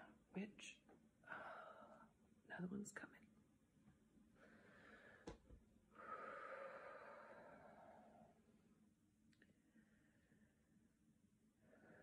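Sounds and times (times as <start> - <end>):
woman exhaling slowly: 5.9 - 8.4.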